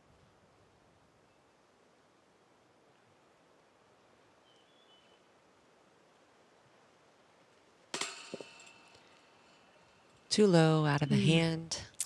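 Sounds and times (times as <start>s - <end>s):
disc dropping knock: 7.9s - 9.1s
disc clanking metal basket: 7.9s - 10.3s.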